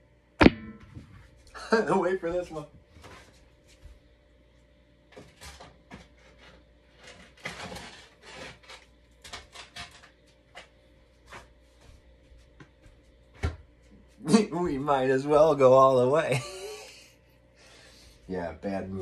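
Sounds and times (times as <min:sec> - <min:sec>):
faint steady hum: 0:00.0 - 0:19.0
sharp knock: 0:00.4 - 0:01.0.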